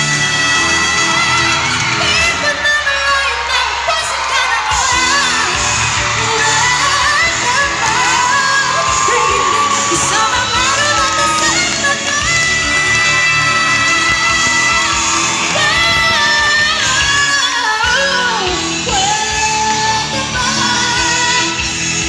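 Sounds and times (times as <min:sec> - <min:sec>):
amplified band accompaniment: 0:00.0 - 0:22.0
woman singing a ballad: 0:00.0 - 0:22.0.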